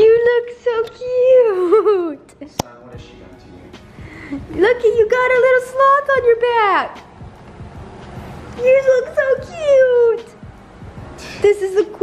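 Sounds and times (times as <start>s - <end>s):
woman baby talk: 8.6s - 10.4s.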